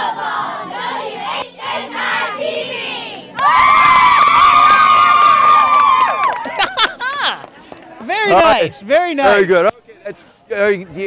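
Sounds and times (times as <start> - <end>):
cheerleaders chanting: 0.0 - 3.6
group screaming and cheering: 3.4 - 6.7.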